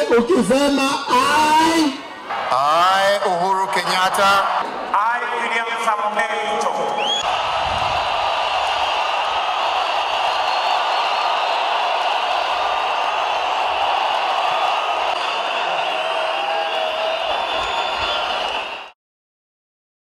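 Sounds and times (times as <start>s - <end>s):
stadium crowd din: 0.0s - 19.0s
high whistling tones: 7.0s - 7.3s, 15.2s - 18.9s.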